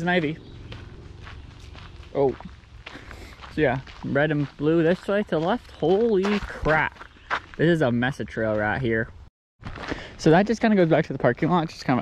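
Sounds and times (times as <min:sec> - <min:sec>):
footsteps on gravel: 0:00.0 - 0:09.0, 0:09.6 - 0:11.0.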